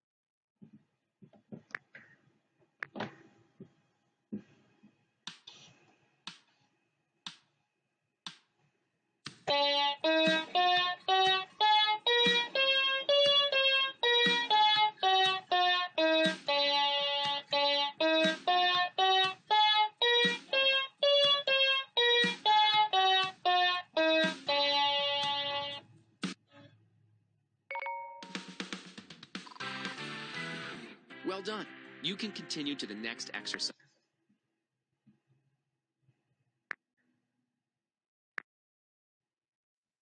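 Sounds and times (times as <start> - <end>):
electronic piano playing a scale: 9.5 - 25.8.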